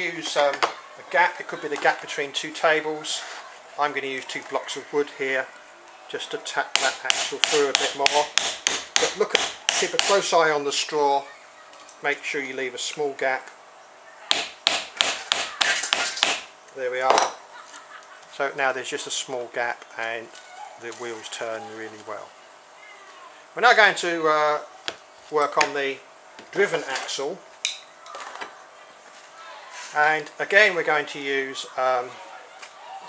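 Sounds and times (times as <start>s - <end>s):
hammer tapping wooden dowel: 6.7s - 10.2s, 14.3s - 16.5s.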